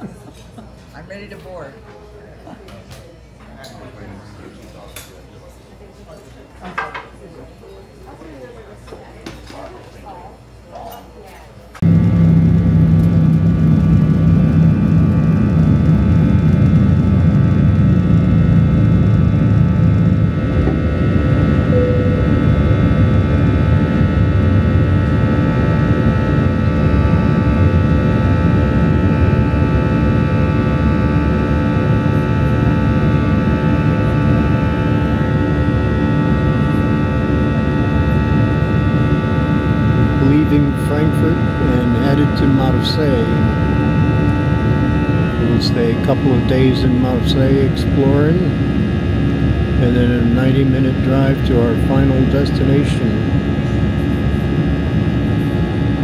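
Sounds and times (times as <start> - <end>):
engine whining tones: 11.8 - 56.0
jet engine rumble in cabin: 11.8 - 56.0.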